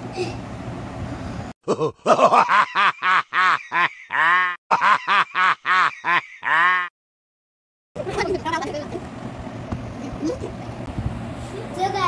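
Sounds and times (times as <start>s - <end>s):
person laughing: 1.6s - 6.9s.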